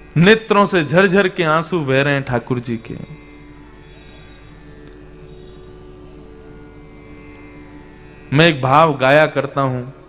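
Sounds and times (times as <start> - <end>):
sustained drone chord music: 0.0 - 10.0.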